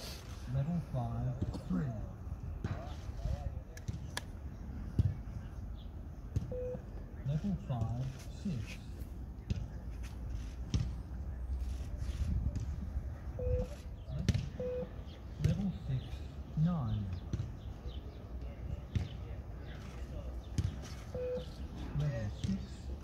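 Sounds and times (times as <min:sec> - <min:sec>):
distant voices: 0:00.0 - 0:23.0
short electronic beeps: 0:06.5 - 0:06.9, 0:13.4 - 0:13.8, 0:14.6 - 0:15.0, 0:21.1 - 0:21.6.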